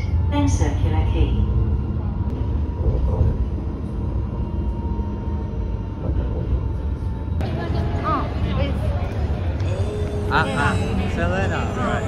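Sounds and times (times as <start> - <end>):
tram running low rumble: 0.0 - 12.0.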